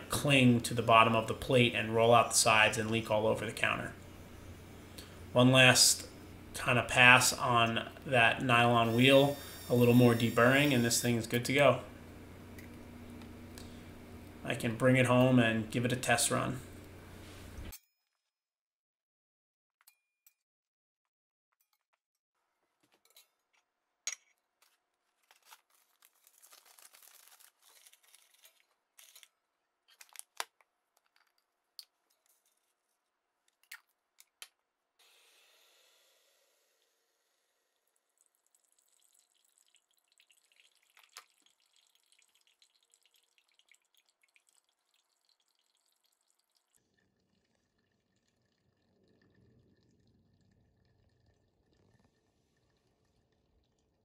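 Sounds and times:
hot water pouring: 0.0 - 17.7, 36.5 - 54.0
coffee trickling into mug: 24.6 - 29.3, 37.7 - 54.0.

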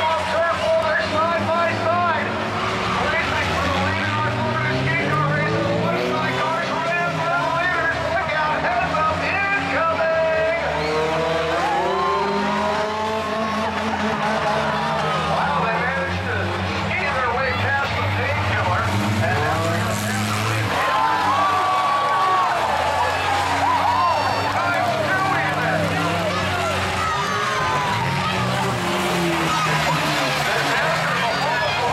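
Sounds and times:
car engines revving: 0.0 - 31.9
crowd voices: 0.0 - 31.9.

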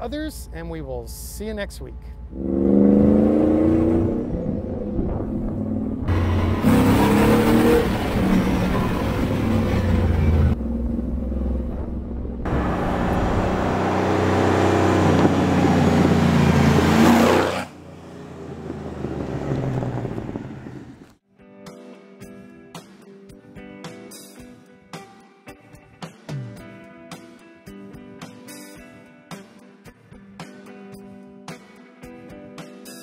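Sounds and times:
car engine accelerating: 2.2 - 21.2.

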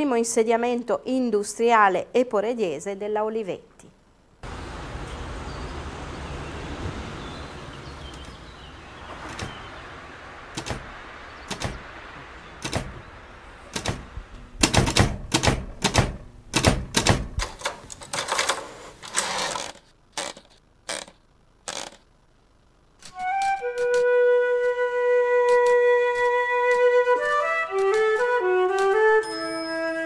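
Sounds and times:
steady background hiss: 0.0 - 30.0
typewriter keystrokes: 10.6 - 10.8, 13.7 - 21.1, 25.5 - 29.2.

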